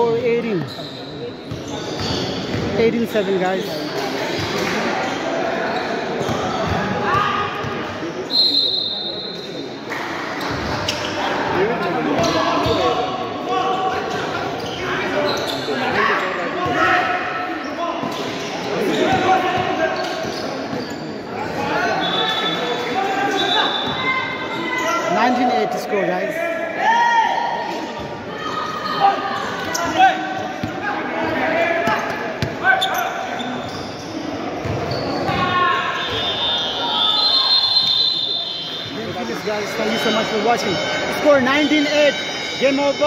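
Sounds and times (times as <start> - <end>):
people talking and calling out: 0.0 - 43.0.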